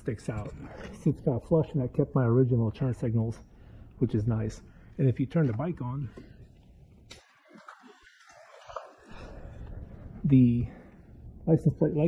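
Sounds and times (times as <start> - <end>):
faint low background noise: 8.5 - 12.0.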